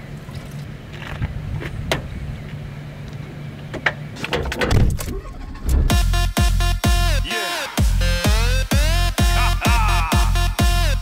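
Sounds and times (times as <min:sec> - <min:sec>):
electronic dance music: 0:05.8 - 0:11.0.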